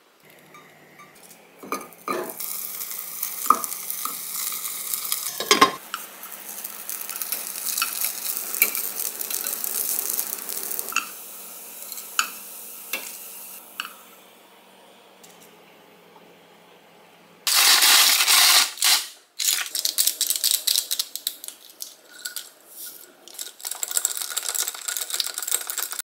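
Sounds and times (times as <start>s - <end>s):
food sizzling in hot oil: 2.0s - 14.0s.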